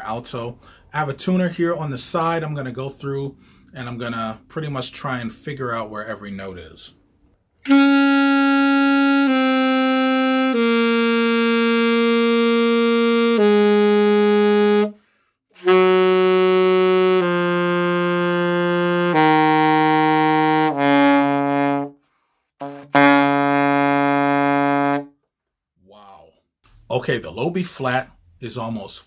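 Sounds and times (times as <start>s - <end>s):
alto saxophone playing a scale: 7.6s - 15.0s, 15.6s - 25.2s.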